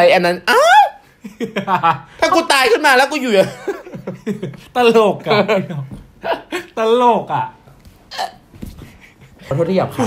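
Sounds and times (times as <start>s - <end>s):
man's throaty hiccup sound: 8.1s - 8.5s.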